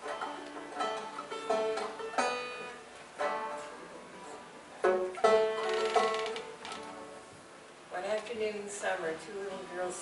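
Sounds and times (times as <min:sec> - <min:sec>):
acoustic string band chord: 0:00.0 - 0:07.4.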